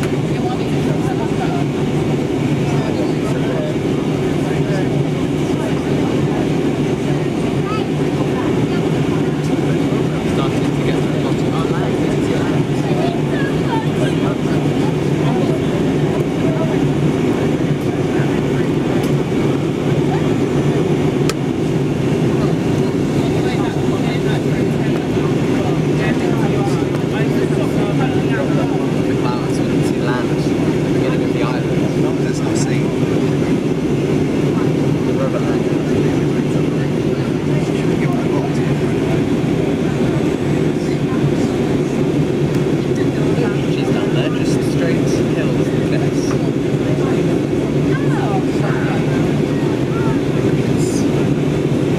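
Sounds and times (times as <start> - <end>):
jet engine drone: 0.0 - 51.9.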